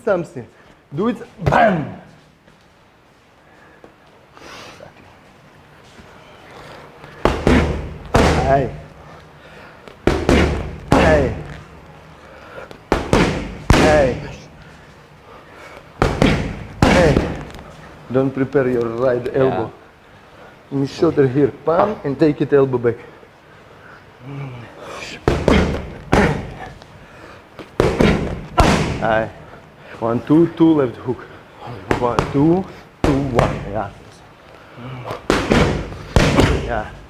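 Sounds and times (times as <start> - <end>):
boxing gloves smacking mitts: 7.0 - 8.9, 9.9 - 11.7, 12.7 - 14.5, 15.7 - 17.8, 25.2 - 26.9, 27.5 - 29.3, 31.8 - 33.9, 35.0 - 37.0.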